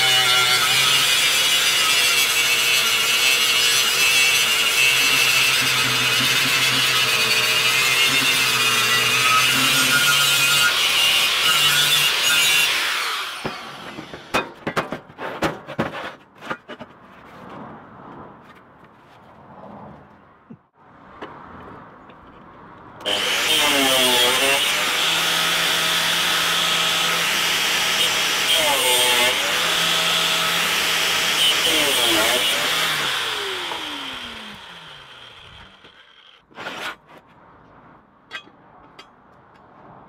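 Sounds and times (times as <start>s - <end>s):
angle grinder cutting steel tube: 0.0s - 14.5s, 23.0s - 37.0s.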